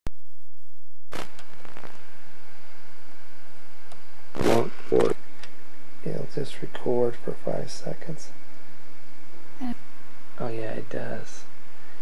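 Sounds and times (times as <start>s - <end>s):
steady tape hiss: 1.1s - 12.0s.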